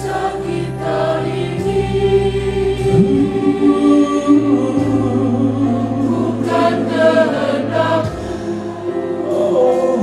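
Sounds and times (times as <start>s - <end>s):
instrumental accompaniment: 0.0s - 10.0s
voices singing together: 0.0s - 10.0s
held low bass note: 2.8s - 6.6s.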